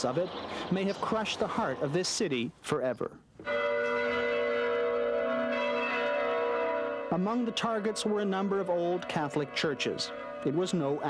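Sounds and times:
church bell ringing: 3.4s - 11.0s.

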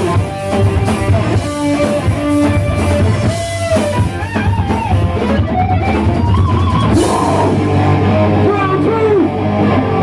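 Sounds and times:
distorted electric guitar: 0.0s - 10.0s
drum kit: 0.0s - 10.0s.

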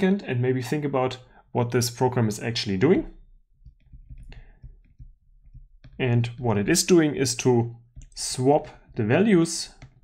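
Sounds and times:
stylus tapping on tablet screen: 3.4s - 6.5s, 7.9s - 10.0s.

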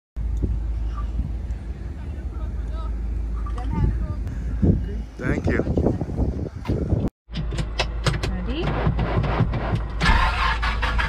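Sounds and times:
steady low rumble: 0.2s - 7.4s.

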